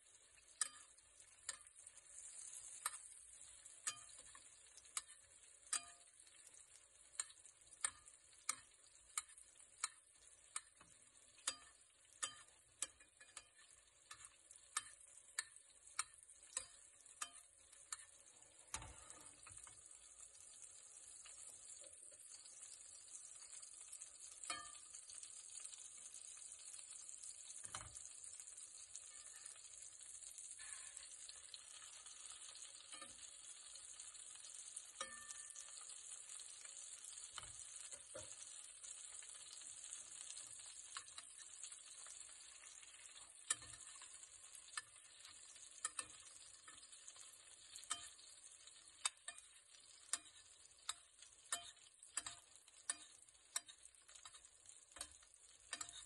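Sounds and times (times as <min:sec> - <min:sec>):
steak sizzling in a pan: 0:00.0 - 0:56.0.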